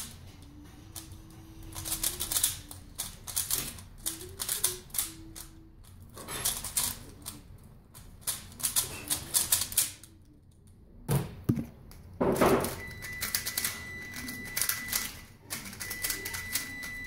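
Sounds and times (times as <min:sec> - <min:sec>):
plastic puzzle cube clicking turns: 0:01.7 - 0:10.6.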